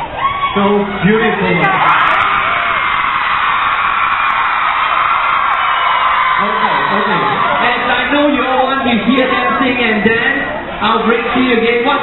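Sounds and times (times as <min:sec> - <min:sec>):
crowd screaming and cheering: 0:00.0 - 0:11.5.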